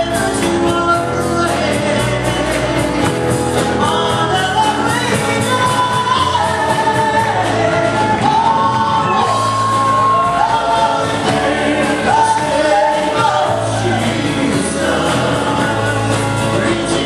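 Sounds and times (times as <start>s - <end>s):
person singing gospel song: 0.0s - 17.0s
piano accompaniment: 0.0s - 17.0s
steady bass: 0.0s - 17.0s.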